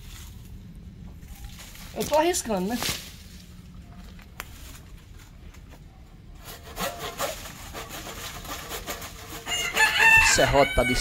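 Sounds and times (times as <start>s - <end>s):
leaves brushing against camera: 0.0s - 5.4s
steady low rumble: 0.0s - 6.2s.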